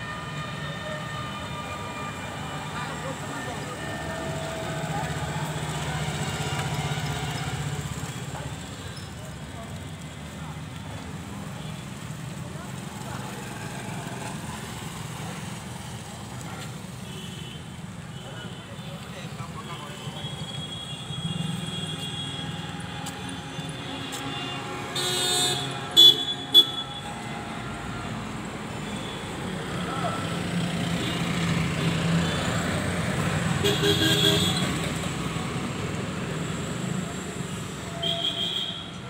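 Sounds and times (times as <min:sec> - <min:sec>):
road traffic hum: 0:00.0 - 0:39.0
vehicle horn honking: 0:19.8 - 0:27.6, 0:33.6 - 0:34.9, 0:37.9 - 0:39.0.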